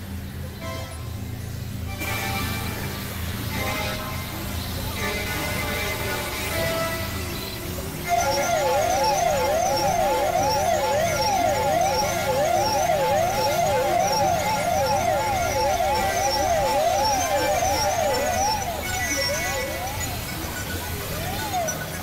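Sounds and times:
low synth drone: 0:00.0 - 0:22.0
synthesizer siren tone: 0:02.0 - 0:22.0.

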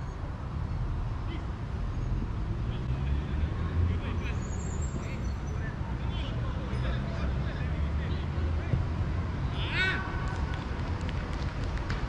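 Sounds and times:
distant players shouting: 0:09.4 - 0:10.6.

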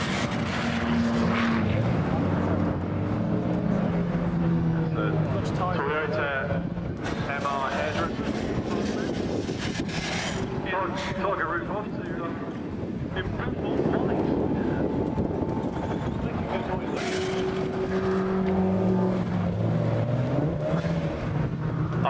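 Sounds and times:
car engine working hard: 0:00.0 - 0:22.0
tyres rasping on gravel: 0:07.6 - 0:10.6.

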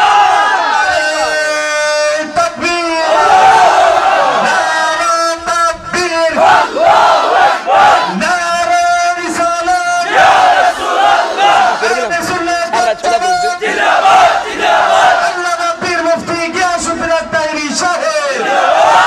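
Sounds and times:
men chanting: 0:00.0 - 0:01.5, 0:10.1 - 0:12.2, 0:12.8 - 0:15.3.

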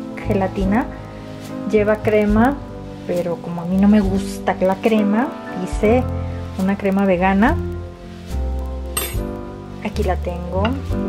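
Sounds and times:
background music: 0:00.0 - 0:11.0
metal spoon clinking on glass: 0:09.0 - 0:09.3.

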